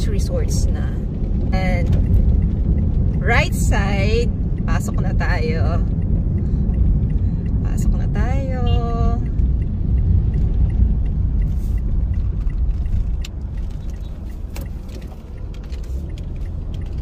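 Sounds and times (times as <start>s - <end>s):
car engine and tyre rumble: 0.0s - 17.0s.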